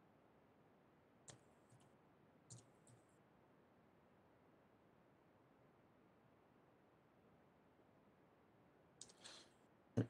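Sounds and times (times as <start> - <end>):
computer keyboard keystrokes: 2.5 - 3.0.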